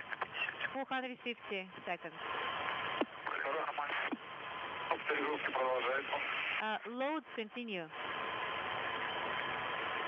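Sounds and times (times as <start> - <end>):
speech over radio: 0.0 - 2.3, 3.0 - 4.2, 4.8 - 7.9
radio hiss: 0.0 - 10.0.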